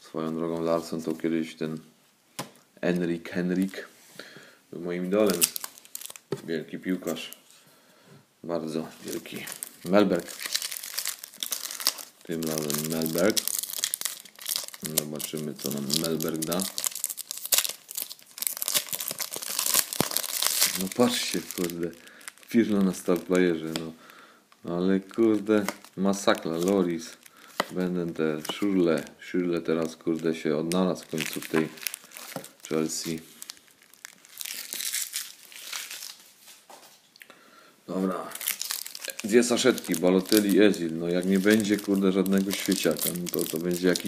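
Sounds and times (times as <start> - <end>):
foil wrapper tearing and crinkling: 5.2 - 6.2, 9.1 - 23.8, 31.1 - 36.2, 38.3 - 44.0.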